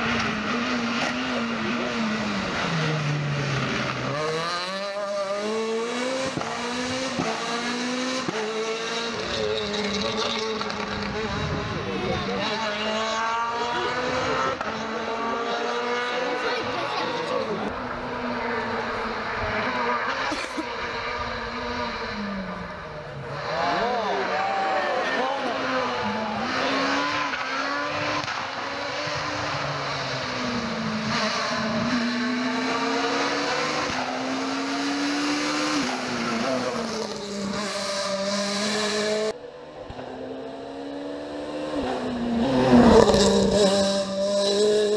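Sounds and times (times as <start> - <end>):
rally car engine revving past: 0.0 - 44.9.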